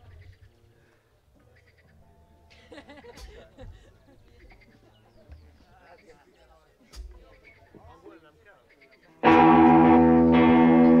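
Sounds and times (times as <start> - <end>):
distorted electric guitar chord: 9.2 - 11.0.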